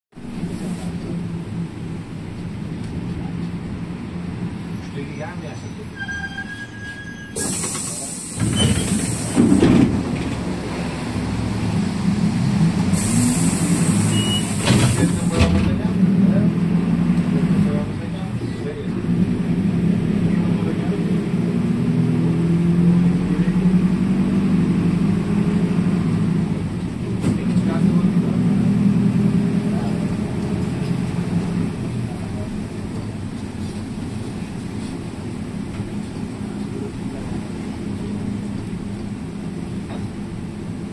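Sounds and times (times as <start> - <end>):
bus engine droning: 0.2 - 40.9
loud hissing: 7.4 - 9.5, 12.8 - 15.3.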